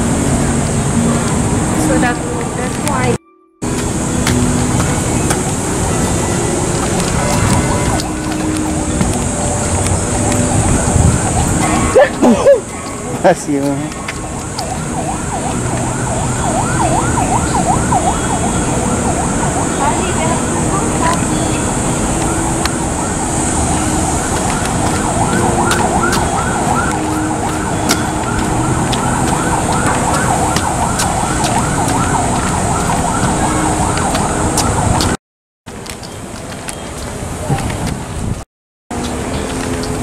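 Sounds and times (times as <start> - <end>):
low street hum: 0.0 - 40.0
siren yelping: 5.6 - 35.2.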